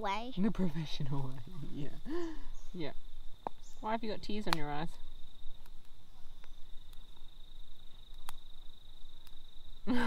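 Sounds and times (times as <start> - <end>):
cricket trilling: 0.2 - 10.0.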